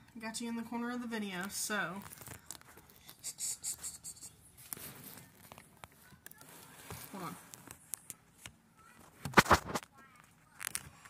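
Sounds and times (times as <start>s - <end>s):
phone handling rubbing and rustling: 4.6s - 9.8s.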